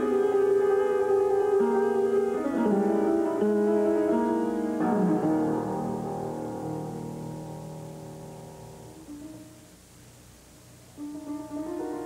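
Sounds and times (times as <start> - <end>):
slow solo piano: 0.0 - 9.9, 10.9 - 12.0.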